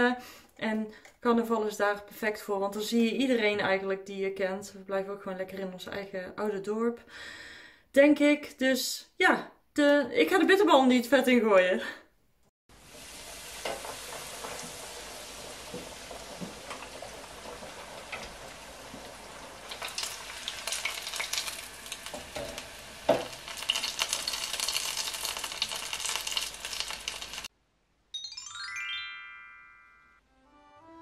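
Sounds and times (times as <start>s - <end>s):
food sizzling in deep fryer: 12.7s - 27.5s.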